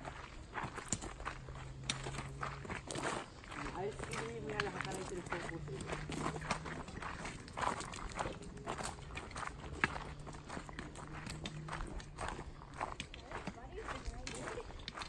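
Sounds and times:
footsteps on gravel: 0.0s - 15.0s
walking sticks tapping stones: 0.0s - 15.0s.

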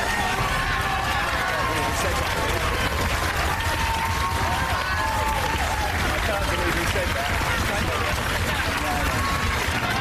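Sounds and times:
audience applauding: 0.0s - 10.0s.

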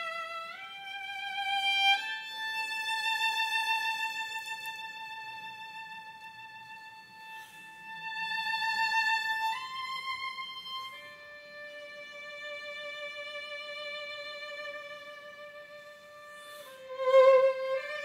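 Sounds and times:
solo violin bowed slowly: 0.0s - 18.0s.

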